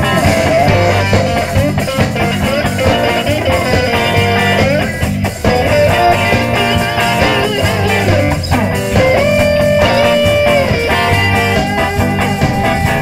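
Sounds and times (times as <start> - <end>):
lead guitar with bent notes: 0.0 - 13.0
live blues band: 0.0 - 13.0.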